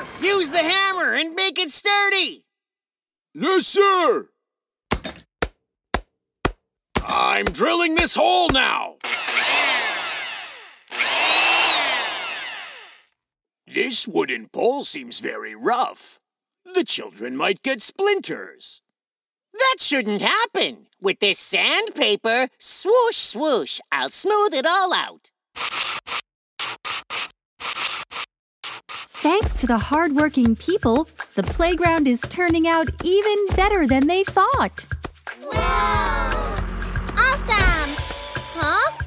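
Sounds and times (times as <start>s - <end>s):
cordless power drill whining: 9.0s - 13.1s
sandpaper rubbing wood: 25.6s - 29.3s.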